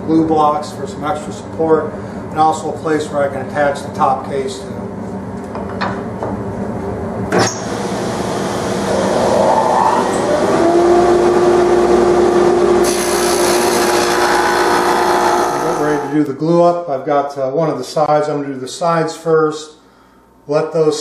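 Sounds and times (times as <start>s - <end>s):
table saw cutting wood: 7.4s - 16.3s.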